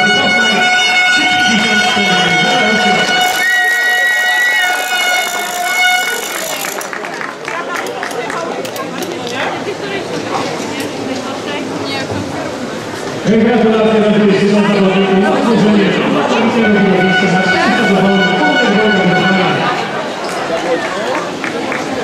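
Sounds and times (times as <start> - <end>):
higher tone: 0.0 - 6.6, 15.9 - 20.0
steady horn-like tone: 0.0 - 6.8, 16.3 - 20.0
voices: 0.0 - 22.0
scattered claps: 4.6 - 9.5, 20.2 - 22.0.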